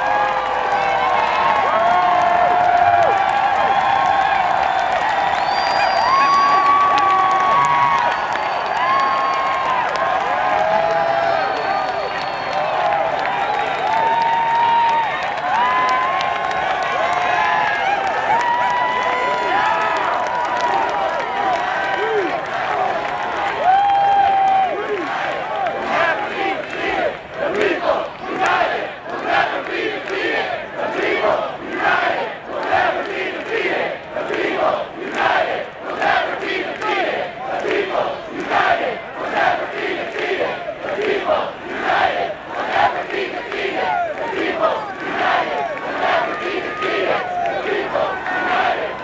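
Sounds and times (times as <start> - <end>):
crowd chanting and shouting: 15.4 - 49.0.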